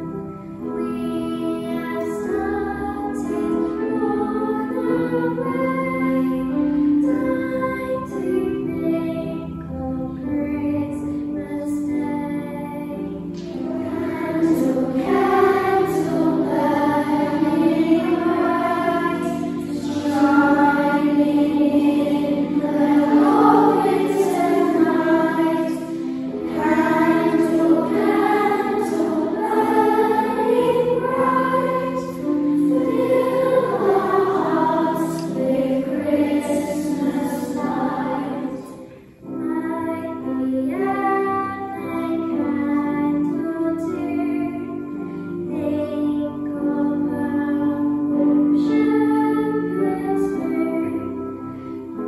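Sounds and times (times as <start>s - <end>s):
children's choir singing: 0.0s - 52.0s.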